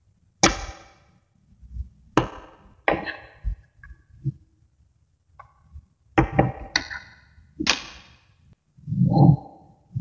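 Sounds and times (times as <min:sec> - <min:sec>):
magnetic balls clacking: 0:05.4 - 0:08.3.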